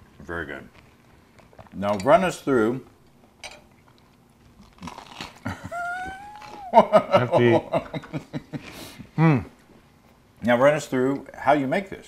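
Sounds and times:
crunchy bite into toast: 0:04.5 - 0:05.6.

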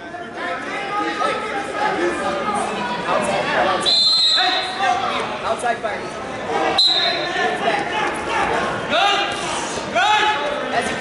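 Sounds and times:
voices calling out in echoing gym: 0:00.0 - 0:11.0.

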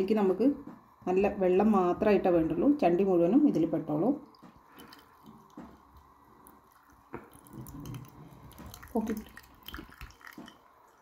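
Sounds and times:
wet cloth squeezed dripping: 0:04.3 - 0:10.6.

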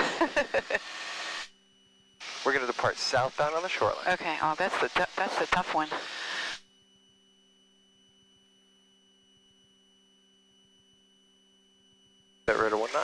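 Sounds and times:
hiss: 0:02.2 - 0:03.0.

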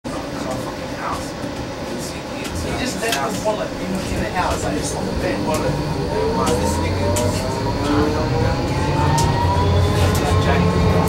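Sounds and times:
tram wheels rumbling on rail: 0:00.1 - 0:11.0.

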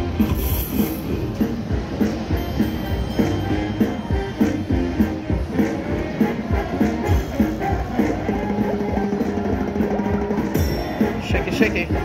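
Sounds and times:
steady drum beat: 0:00.0 - 0:12.0.

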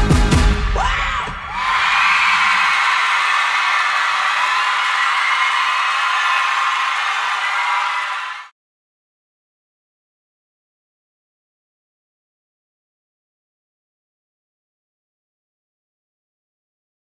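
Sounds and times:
pop song: 0:00.0 - 0:01.4
audience screaming and cheering: 0:00.6 - 0:08.5.

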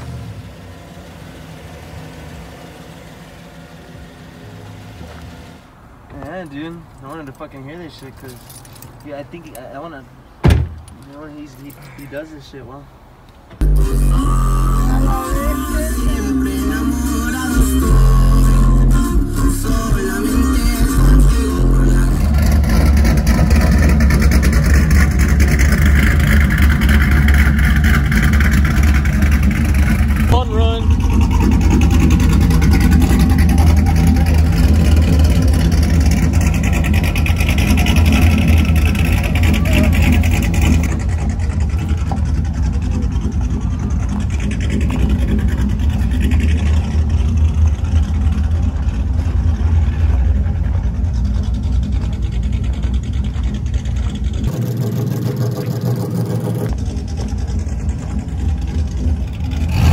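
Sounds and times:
vehicle engines idling: 0:00.0 - 0:59.9
indistinct voices: 0:13.6 - 0:23.4, 0:30.2 - 0:41.4.

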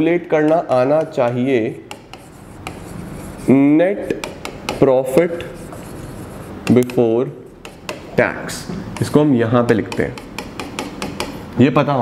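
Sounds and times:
stylus tapping on glass: 0:04.1 - 0:04.8, 0:07.6 - 0:11.4.

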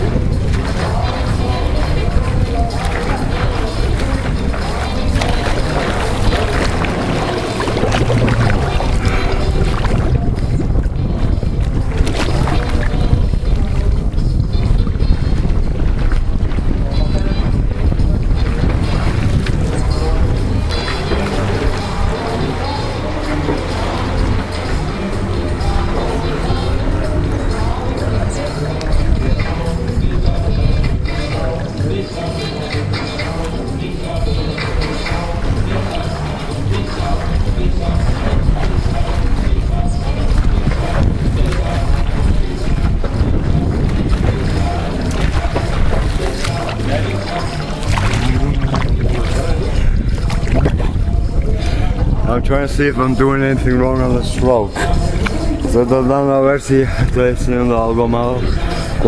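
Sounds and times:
water lapping at pool edge: 0:00.0 - 0:53.5, 0:54.3 - 0:59.0
wind buffeting microphone: 0:00.0 - 0:59.0.

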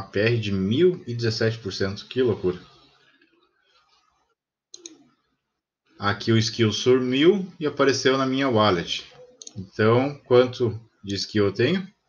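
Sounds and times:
computer mouse clicks: 0:04.7 - 0:05.2, 0:09.1 - 0:09.7.

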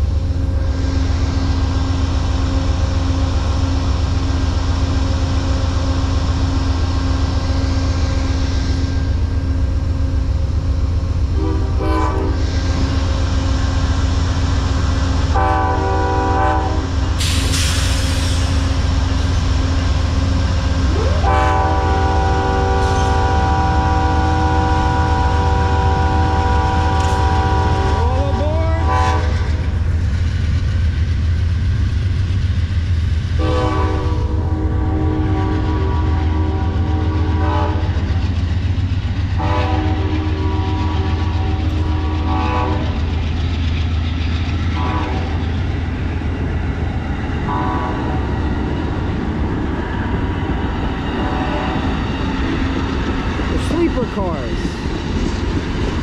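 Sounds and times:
train engines and wheels rumbling: 0:00.0 - 0:56.0
train horn blasts: 0:11.3 - 0:12.9, 0:15.3 - 0:17.0, 0:20.9 - 0:29.6, 0:33.4 - 0:38.0, 0:39.4 - 0:43.0, 0:44.8 - 0:45.4, 0:47.5 - 0:48.3.

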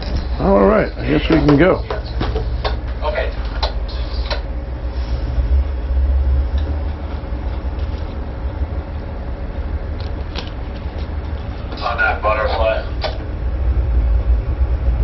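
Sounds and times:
diesel engines rumbling: 0:00.0 - 0:15.0.

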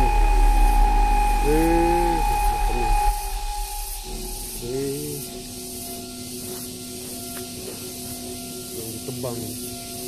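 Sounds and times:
chainsaw running: 0:00.0 - 0:05.1.

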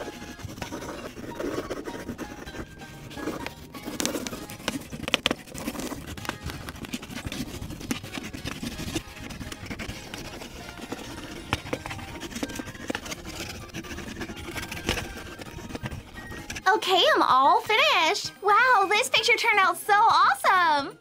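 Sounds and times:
crayon scribbling on paper: 0:00.0 - 0:16.8
music playing: 0:00.0 - 0:21.0.

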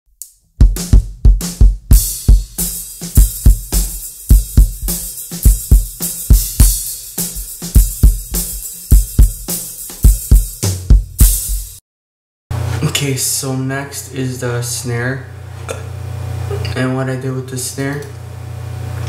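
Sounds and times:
cymbals and hi-hat: 0:00.2 - 0:11.8
bass drum kicks: 0:00.6 - 0:02.6, 0:03.2 - 0:06.8, 0:07.8 - 0:09.5, 0:10.1 - 0:11.8.

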